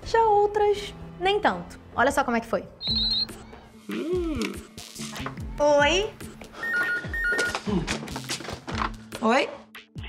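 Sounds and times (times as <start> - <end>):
electronic telephone ringing: 6.6 - 7.6.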